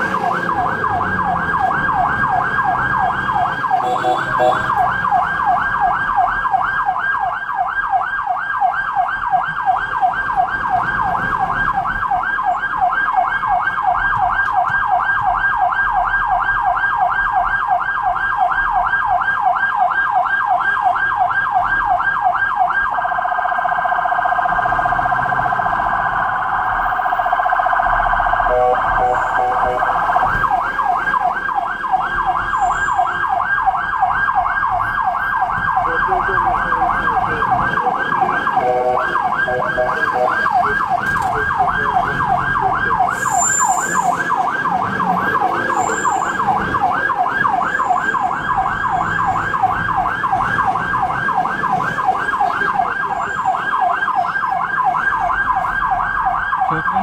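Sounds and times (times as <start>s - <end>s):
ambulance siren wailing: 0.0s - 57.0s
steady siren tone: 0.0s - 57.0s.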